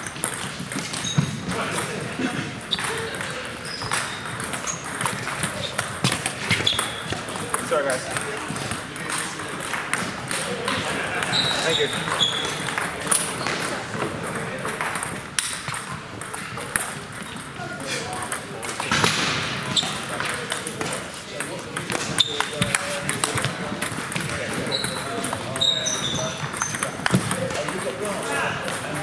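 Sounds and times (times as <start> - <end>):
table tennis balls clicking: 0.0 - 29.0
chatter of voices: 1.1 - 29.0.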